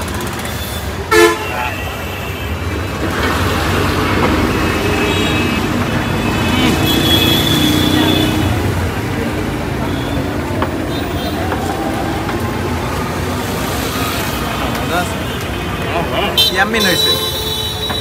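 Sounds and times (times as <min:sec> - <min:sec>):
street traffic rumble: 0:00.0 - 0:18.0
vehicle horn toot: 0:01.1 - 0:02.6, 0:04.9 - 0:08.5, 0:16.4 - 0:18.0.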